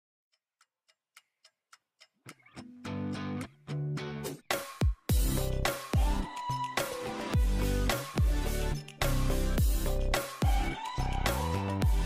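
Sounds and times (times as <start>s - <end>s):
faint evenly spaced clicks: 0.4s - 3.6s.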